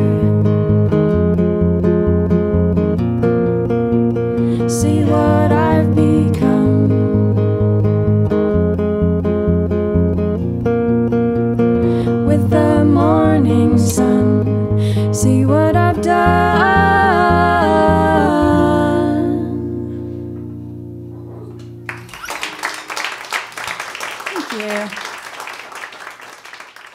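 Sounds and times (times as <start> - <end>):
acoustic guitars strumming: 0.0 - 22.2
wordless vocals: 4.5 - 7.4, 12.0 - 20.1.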